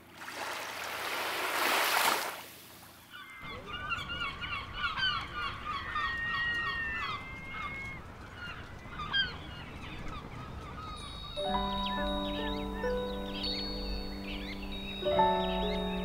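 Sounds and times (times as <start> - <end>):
gulls calling: 3.0 - 16.0.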